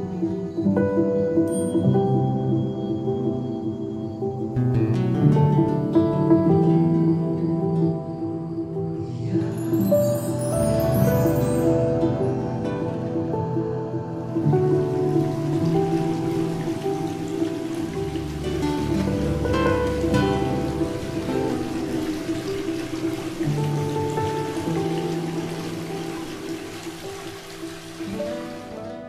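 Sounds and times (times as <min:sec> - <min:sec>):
nylon-string acoustic guitar music: 0:04.6 - 0:07.8, 0:11.7 - 0:26.3
steady hiss: 0:06.3 - 0:29.0.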